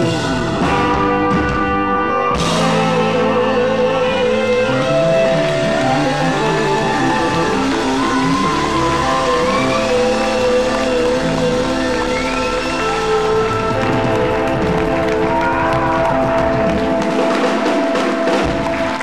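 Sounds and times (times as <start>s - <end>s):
gliding guitar notes: 0.0s - 19.0s
live rock band playing: 0.0s - 19.0s.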